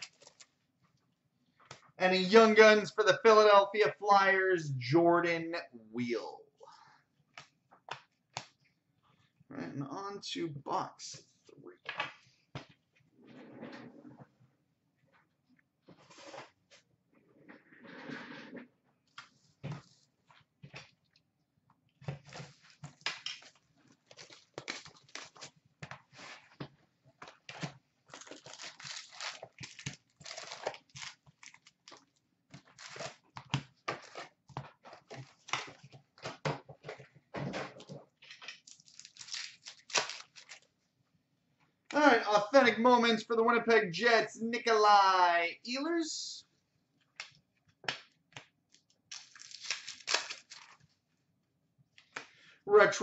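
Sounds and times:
foil packs crinkling and ripping: 0:22.3 - 0:25.6, 0:28.1 - 0:33.3, 0:38.6 - 0:40.7, 0:49.1 - 0:50.9.

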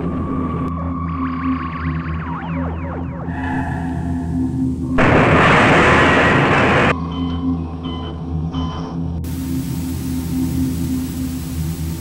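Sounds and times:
droning ambient music: 0:00.0 - 0:12.0
loud burst of hiss-like noise: 0:09.3 - 0:12.0.

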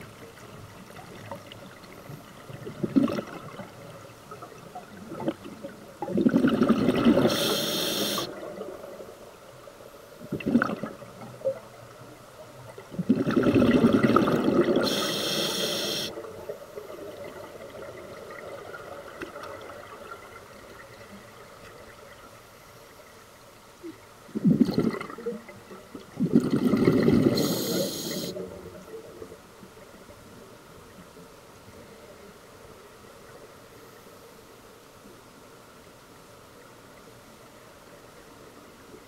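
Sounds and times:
diver breathing through regulator: 0:07.2 - 0:08.3, 0:14.8 - 0:16.1, 0:27.3 - 0:28.4.

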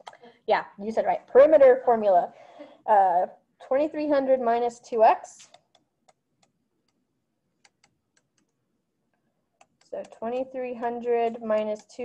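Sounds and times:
stylus tapping writing surface: 0:09.6 - 0:12.0.

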